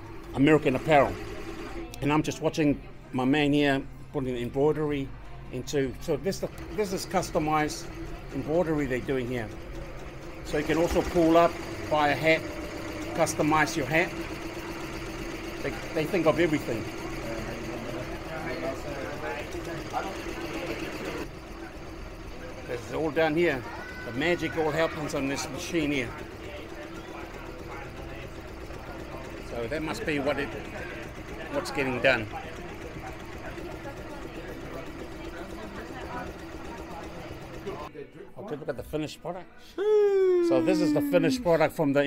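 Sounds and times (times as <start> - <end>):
embroidery machine humming: 0.0 - 3.1, 3.8 - 37.9, 39.8 - 42.0
faint voices: 39.8 - 42.0.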